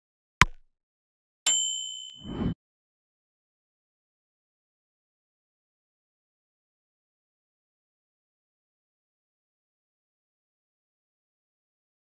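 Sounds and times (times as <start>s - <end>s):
notification bell ding: 1.5s - 2.6s.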